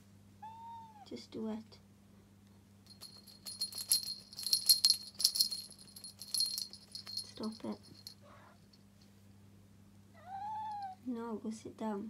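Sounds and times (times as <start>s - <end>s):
small bell jingling: 2.9s - 8.8s.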